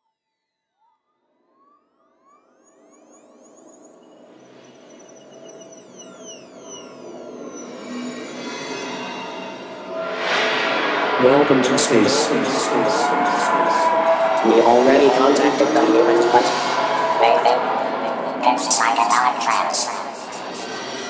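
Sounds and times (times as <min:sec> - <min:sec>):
synthesizer drone: 0:02.5 - 0:21.0
electronic tones gliding in pitch: 0:11.2 - 0:21.0.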